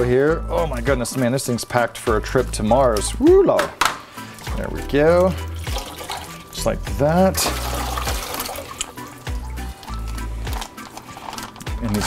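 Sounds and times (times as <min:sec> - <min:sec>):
background music with bass: 0:00.0 - 0:10.9, 0:11.6 - 0:12.0
water pouring and splashing: 0:04.2 - 0:12.0
plastic bag crinkling: 0:07.6 - 0:12.0.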